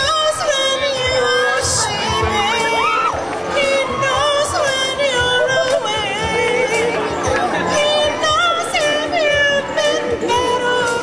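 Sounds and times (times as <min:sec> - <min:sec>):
music with a steady beat: 0:00.0 - 0:11.0
woman singing into a microphone: 0:00.0 - 0:11.0.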